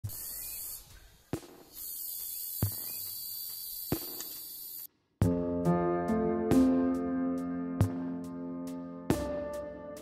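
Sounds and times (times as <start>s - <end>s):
high-pitched hiss: 0.0s - 4.9s
sharp clicks: 1.8s - 4.9s.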